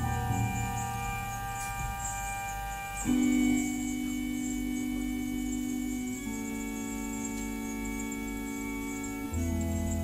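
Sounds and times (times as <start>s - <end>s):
faint hiss: 0.0s - 10.0s
organ-like chords from rock band: 0.0s - 10.0s.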